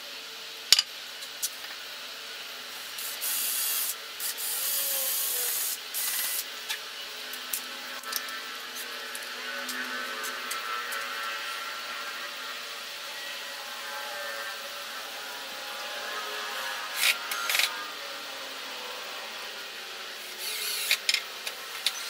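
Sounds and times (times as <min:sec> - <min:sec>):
cordless drill boring into wood: 0:03.0 - 0:06.5, 0:20.2 - 0:22.0.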